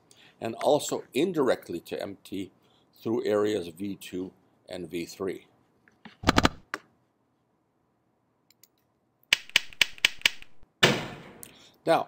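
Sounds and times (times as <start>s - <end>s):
sharp clicks: 8.5s - 10.6s.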